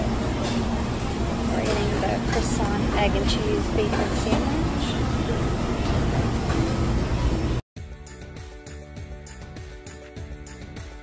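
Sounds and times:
restaurant din low rumble: 0.0s - 7.6s.

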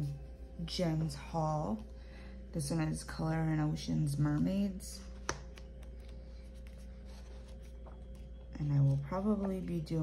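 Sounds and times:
steady low hum: 0.0s - 10.0s
paper pages turning: 5.1s - 9.7s.

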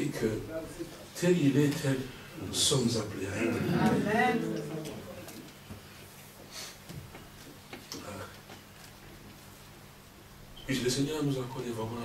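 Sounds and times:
faint murmured vocal sounds: 0.0s - 6.0s
low electrical hum: 0.0s - 12.0s.

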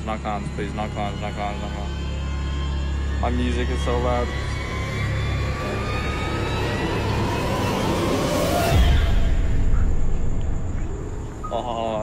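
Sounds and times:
deep steady rumble: 0.0s - 12.0s
heavy low boom: 5.7s - 11.4s.

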